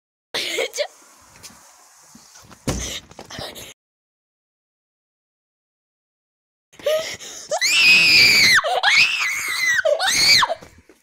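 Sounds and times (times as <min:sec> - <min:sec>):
person screaming shrilly: 0:07.5 - 0:10.6.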